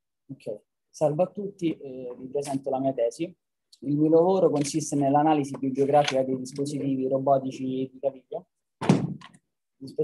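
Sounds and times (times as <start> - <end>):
man speaking: 0.2 - 8.5, 9.8 - 10.0
dull thump: 8.8 - 9.3.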